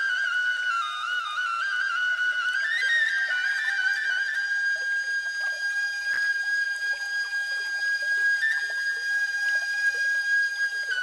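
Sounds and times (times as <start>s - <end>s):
flute holding long high note: 0.0s - 11.0s.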